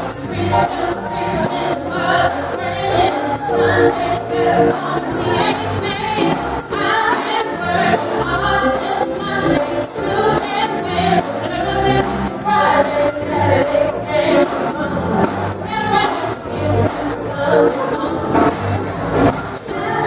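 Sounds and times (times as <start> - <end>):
gospel choir singing: 0.0 - 20.0
tambourine jingling: 0.0 - 20.0.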